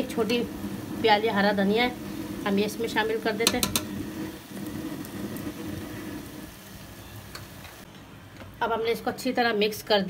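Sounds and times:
light sizzling: 0.0s - 7.9s.

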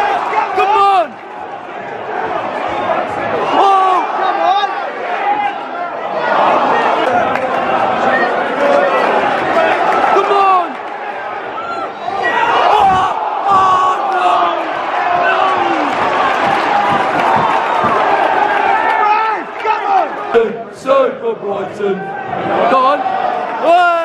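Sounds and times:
stadium crowd shouting: 0.0s - 24.0s.

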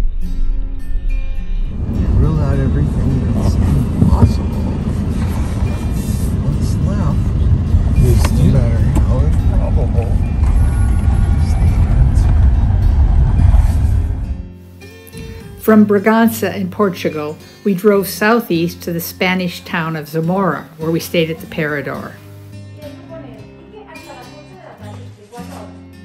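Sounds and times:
guitar music: 0.0s - 26.0s
tyres rumbling on cobblestones: 1.7s - 14.6s.

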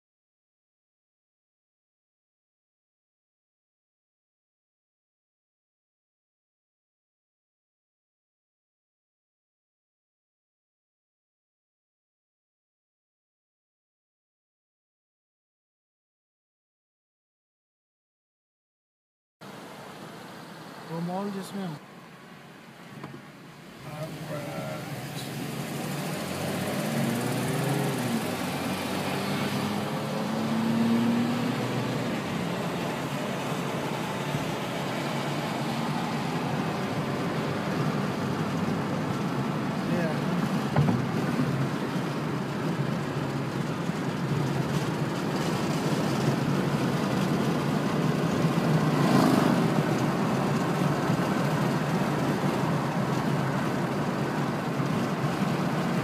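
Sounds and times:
tyre and road rumble: 23.0s - 56.0s
car engine accelerating: 23.7s - 56.0s.

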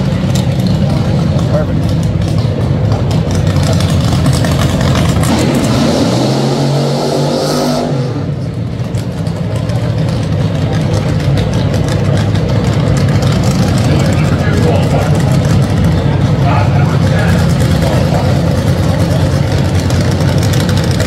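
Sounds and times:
dragster engine revving: 0.0s - 21.0s
dragster engines rumbling: 0.0s - 21.0s.

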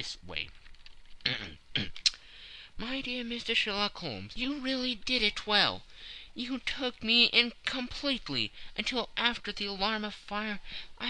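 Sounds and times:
person speaking: 0.0s - 11.0s
mouth click: 0.8s - 2.2s
person coughing: 1.3s - 2.0s
breath in: 2.2s - 2.8s.

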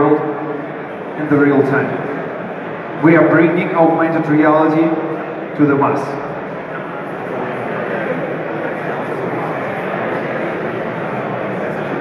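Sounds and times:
large hall background noise: 0.0s - 12.0s
murmur of voices: 0.0s - 12.0s.

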